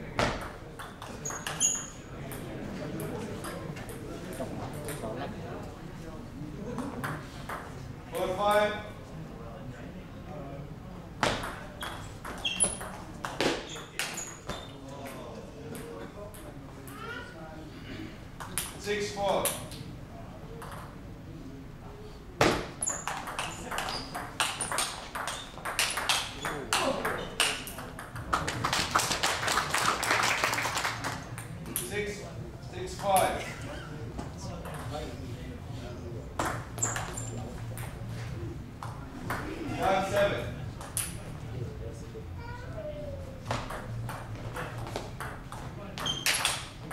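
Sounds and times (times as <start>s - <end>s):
short high squeaks: 1.2s - 2.1s, 11.8s - 12.9s, 13.6s - 14.8s, 22.8s - 24.2s, 36.8s - 37.4s, 46.0s - 46.6s
table tennis ball clicks: 22.8s - 28.3s.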